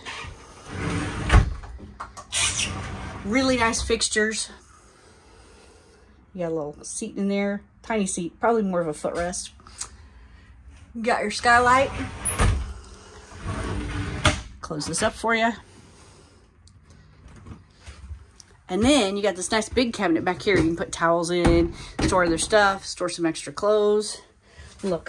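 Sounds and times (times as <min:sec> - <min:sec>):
glass shower door sliding: 0:00.0 - 0:01.6, 0:02.3 - 0:03.9, 0:11.4 - 0:15.0.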